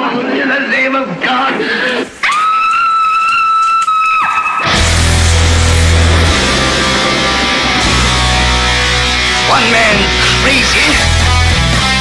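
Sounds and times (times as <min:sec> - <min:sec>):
heavy metal band playing: 0:04.6 - 0:12.0.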